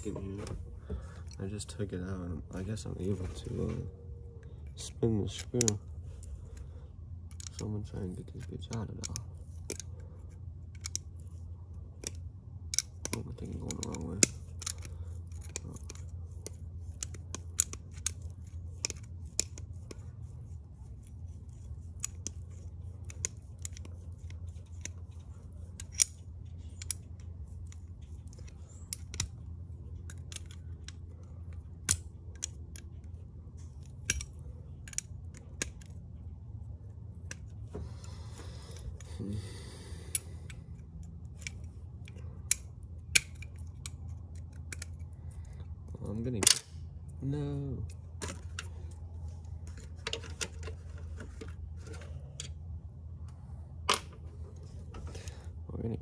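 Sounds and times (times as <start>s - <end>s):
steady low hum: 0.0s - 56.0s
pliers metal clicks and snaps: 40.1s - 45.0s.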